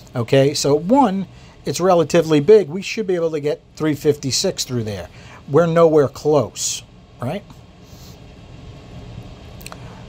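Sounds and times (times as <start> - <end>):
steady low hum: 0.0 - 10.0
faint click: 9.6 - 9.9.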